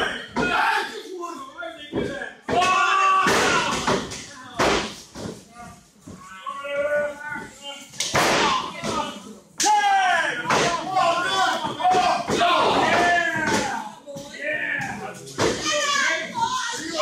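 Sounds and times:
people shouting and yelling: 0:00.0 - 0:17.0.

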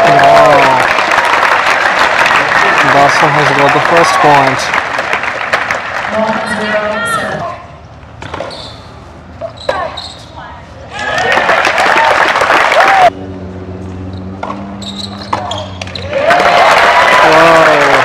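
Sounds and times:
crowd applause and cheering: 0:00.0 - 0:07.1, 0:10.9 - 0:13.2, 0:15.8 - 0:18.0.

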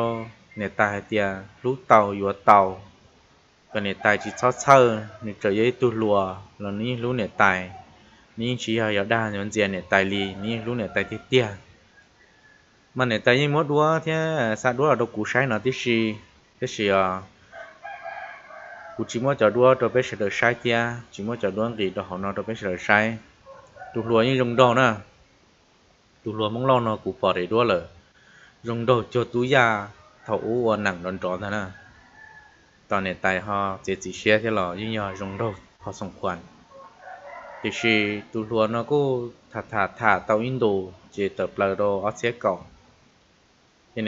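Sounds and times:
man speaking: 0:00.0 - 0:02.9, 0:03.8 - 0:07.8, 0:08.4 - 0:11.7, 0:13.0 - 0:17.3, 0:19.0 - 0:23.3, 0:24.0 - 0:25.1, 0:26.3 - 0:28.0, 0:28.6 - 0:31.8, 0:32.9 - 0:36.5, 0:37.6 - 0:42.7
faint animal call: 0:00.0 - 0:03.0, 0:03.7 - 0:13.6, 0:14.4 - 0:25.2, 0:26.3 - 0:42.9
faint rooster crowing: 0:00.0 - 0:03.0, 0:03.7 - 0:25.2, 0:26.4 - 0:43.1.

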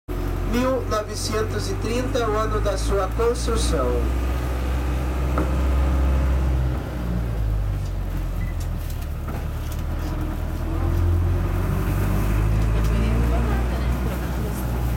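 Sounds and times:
bus engine rumble from inside: 0:00.1 - 0:14.9.

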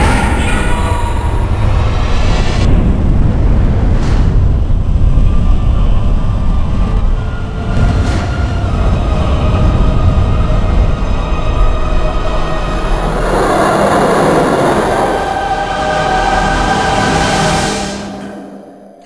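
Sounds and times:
eerie sustained music tones: 0:00.0 - 0:19.0
low rumbling roar: 0:00.0 - 0:19.0.

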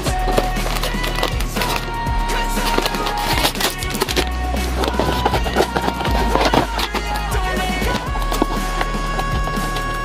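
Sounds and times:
deep bass: 0:00.0 - 0:10.0
knocking beat: 0:00.0 - 0:10.0.

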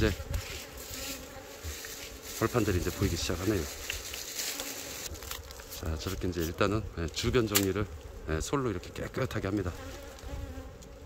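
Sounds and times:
honey bees buzzing: 0:00.0 - 0:11.0.

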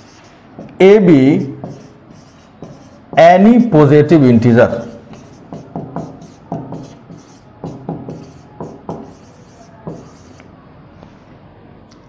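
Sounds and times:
marker pen writing on whiteboard: 0:00.0 - 0:03.4, 0:04.6 - 0:10.5.

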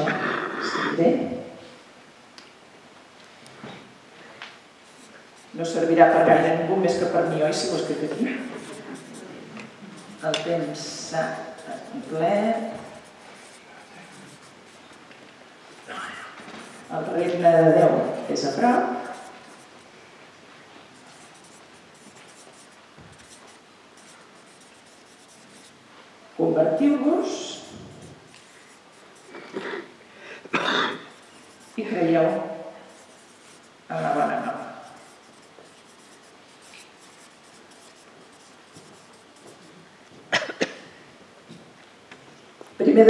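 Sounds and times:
marker writing on paper: 0:04.8 - 0:15.1, 0:15.8 - 0:19.9, 0:20.8 - 0:25.8, 0:27.2 - 0:29.5, 0:31.0 - 0:39.9.

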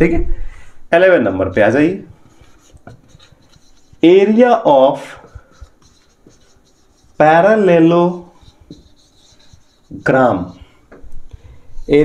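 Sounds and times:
marker pen on whiteboard: 0:01.0 - 0:12.0
soft taps: 0:10.9 - 0:11.2.

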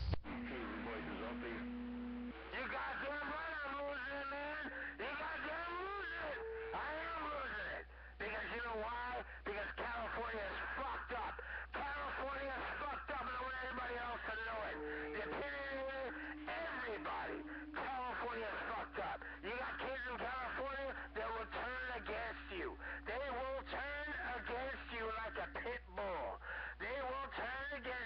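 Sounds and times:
low hum: 0:00.0 - 0:25.6
distorted radio voices: 0:00.0 - 0:28.0
steady radio tones: 0:00.0 - 0:28.0.

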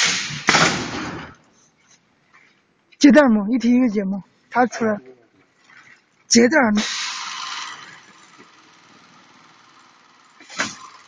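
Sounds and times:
hissing air rush: 0:06.8 - 0:08.1.

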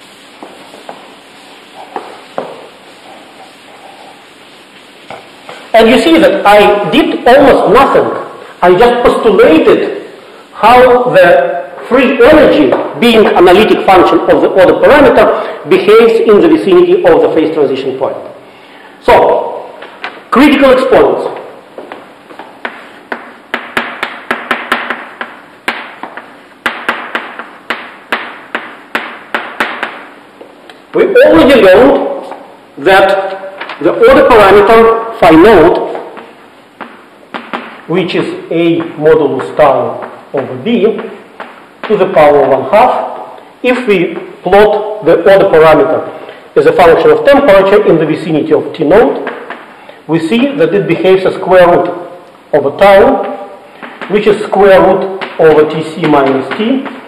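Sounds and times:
chalk tapping on blackboard: 0:00.0 - 0:05.7, 0:21.2 - 0:30.9, 0:33.2 - 0:33.9, 0:35.6 - 0:43.5, 0:49.2 - 0:49.8, 0:53.2 - 0:57.0
chalk scratching on blackboard: 0:00.0 - 0:06.0.

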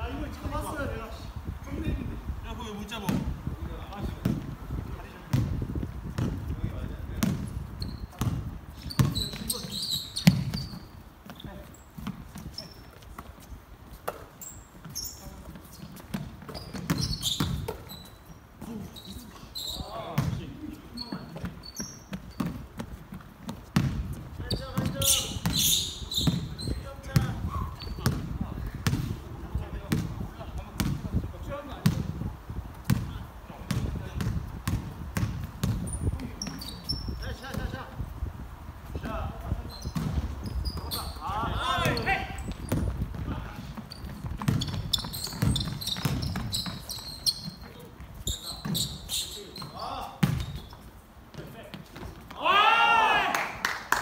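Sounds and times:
shoe squeaks: 0:07.4 - 0:23.1, 0:24.4 - 0:28.3, 0:35.7 - 0:37.7, 0:39.5 - 0:51.1
basketball dribbling on hardwood: 0:21.3 - 0:25.6, 0:33.7 - 0:36.6, 0:41.9 - 0:47.6.

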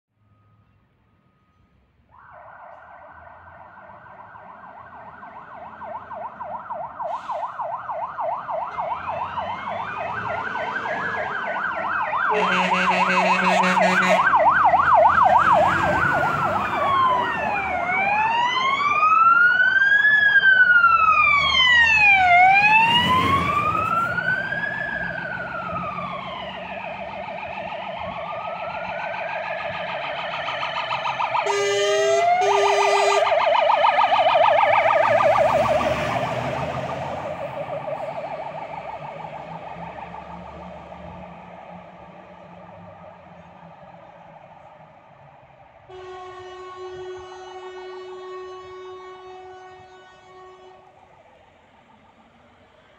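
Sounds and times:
fire engine siren wailing: 0:00.2 - 0:52.9
fast siren yelp: 0:02.1 - 0:50.9
air horn blasts: 0:12.3 - 0:14.4, 0:31.4 - 0:33.3, 0:45.9 - 0:50.9.

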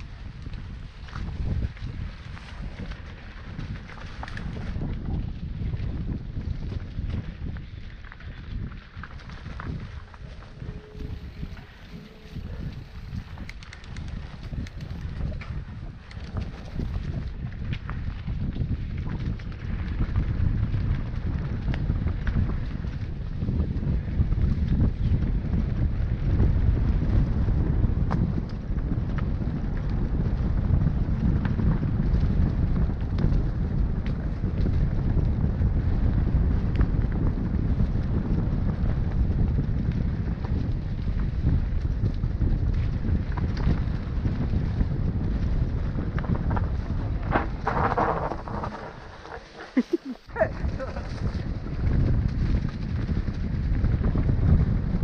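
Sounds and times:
bike clicks and rattles: 0:00.0 - 0:49.9, 0:50.6 - 0:55.0
wind rumbling on microphone: 0:00.0 - 0:55.0.

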